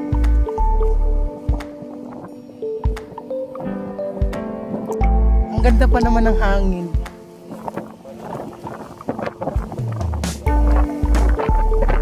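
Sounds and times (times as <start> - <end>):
background music: 0.0 - 12.0
wind on microphone: 0.0 - 12.0.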